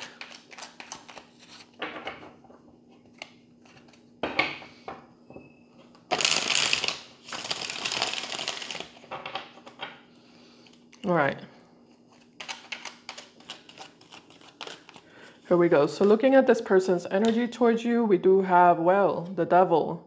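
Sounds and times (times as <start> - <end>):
cards being shuffled: 0.0 - 1.8, 2.9 - 4.1, 6.1 - 9.8, 11.9 - 15.4.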